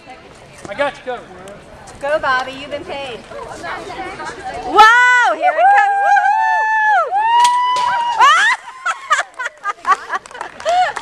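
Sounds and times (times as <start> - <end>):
onlookers whooping: 4.8 - 9.4.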